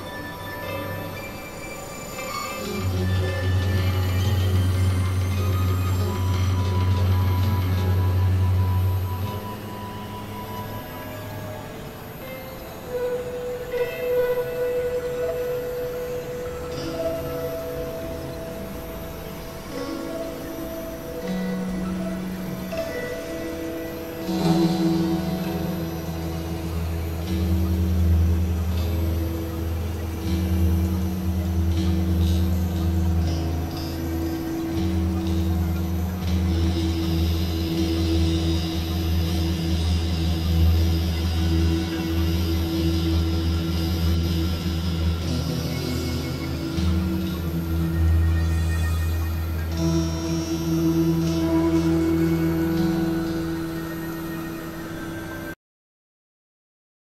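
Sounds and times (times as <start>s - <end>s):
synthesizer drone music: 0.0s - 55.6s.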